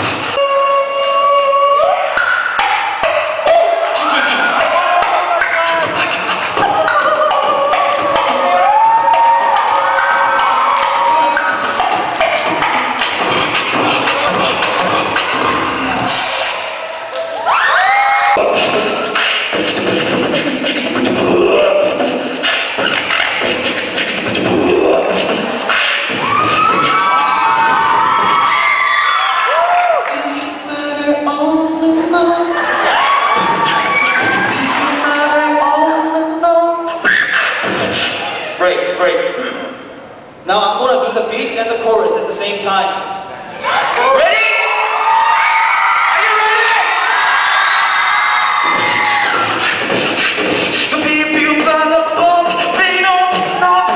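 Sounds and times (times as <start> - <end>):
beatboxing into a microphone: 0.0 - 17.4, 18.3 - 28.5, 29.6 - 41.2, 48.6 - 53.9
rising vocal glide: 3.0 - 16.9, 18.3 - 27.4.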